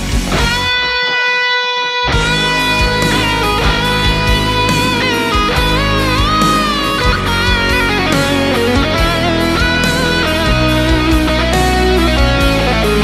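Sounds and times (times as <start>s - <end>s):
electric guitar solo: 0.0s - 13.0s
rock backing track: 0.0s - 13.0s.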